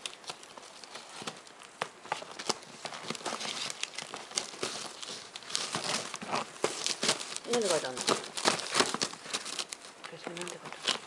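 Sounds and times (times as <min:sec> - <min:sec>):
gift packaging crinkling: 0:00.0 - 0:11.0.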